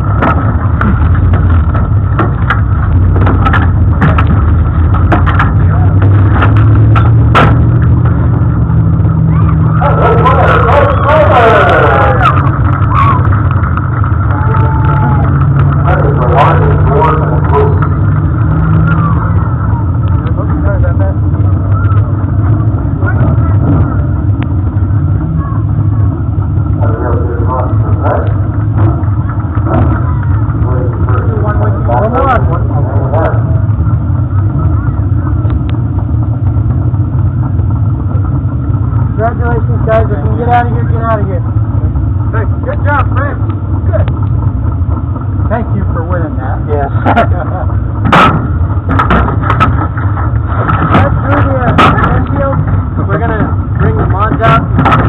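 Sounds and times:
indistinct talking: 0.0 - 55.0
race car engine idling: 0.0 - 55.0.

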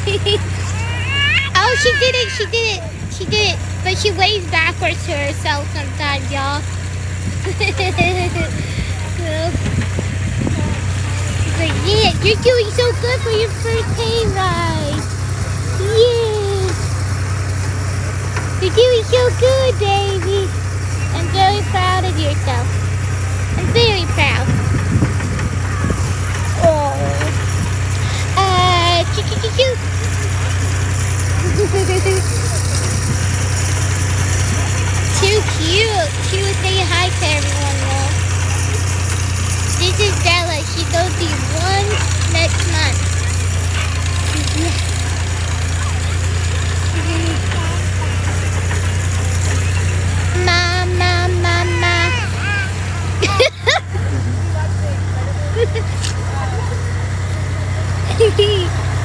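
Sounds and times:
engine droning: 0.0 - 59.0
faint voices: 0.0 - 59.0.

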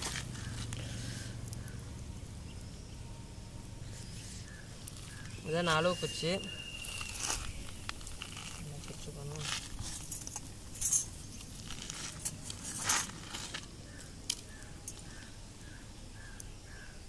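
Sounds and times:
metal hand tools clinking: 9.8 - 13.2.

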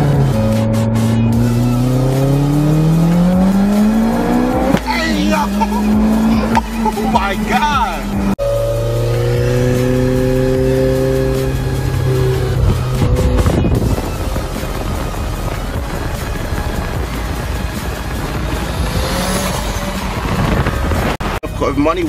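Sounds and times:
car engine and exhaust passing: 0.0 - 21.9
road noise: 0.0 - 22.0.

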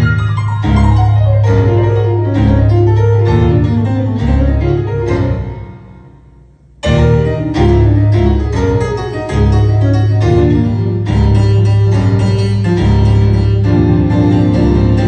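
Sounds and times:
jazz piano trio: 0.0 - 15.0
low bass line: 0.0 - 15.0.

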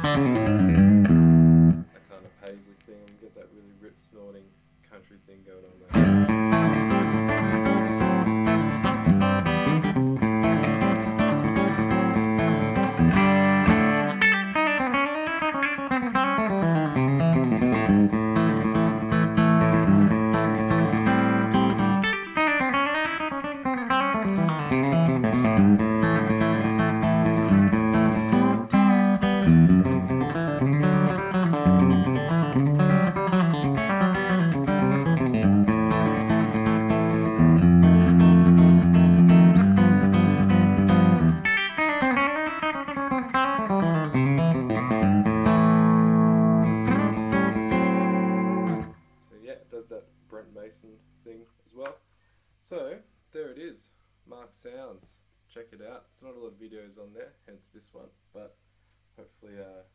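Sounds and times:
electric guitar country licks: 0.0 - 3.4, 5.8 - 49.0.

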